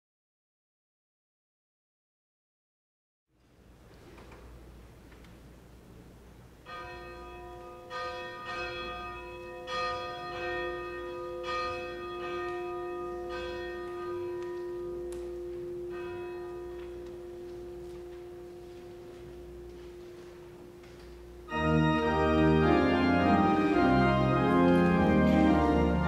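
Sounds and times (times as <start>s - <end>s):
church bell ringing: 6.6s - 26.0s.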